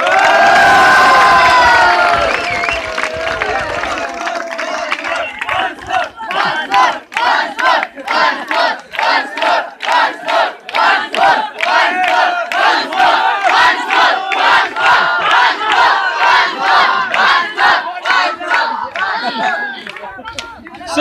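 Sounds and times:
children chanting: 0:04.2 - 0:20.1.

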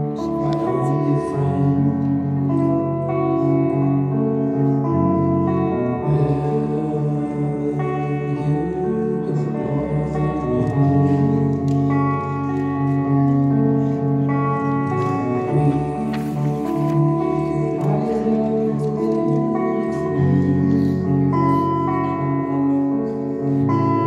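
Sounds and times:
acoustic guitar band music: 0:00.0 - 0:24.0
long held melody notes: 0:00.0 - 0:24.0.

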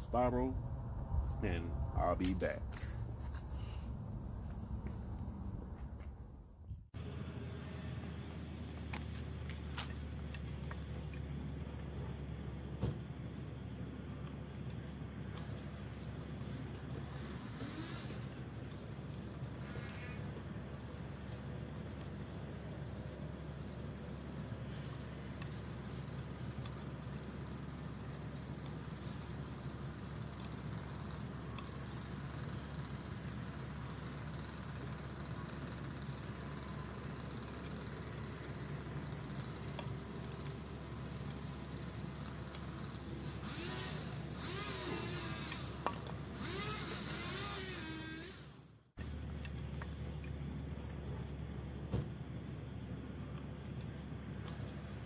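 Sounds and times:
low outdoor rumble: 0:00.0 - 0:55.0.

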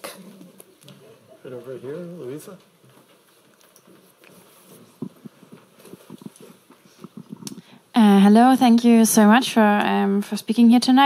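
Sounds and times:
footsteps: 0:00.0 - 0:07.7
microphone handling noise: 0:04.2 - 0:07.8.

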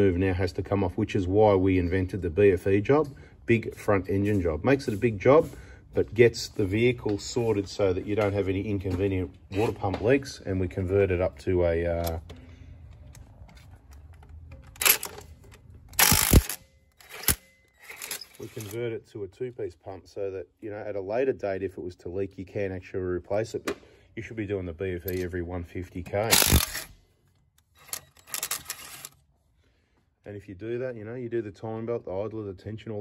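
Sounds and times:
camera handling rustles and knocks: 0:12.0 - 0:18.8.

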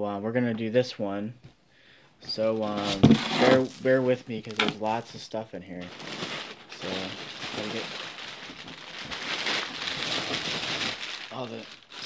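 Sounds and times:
plastic packing crinkling: 0:02.6 - 0:05.1, 0:05.8 - 0:12.0.

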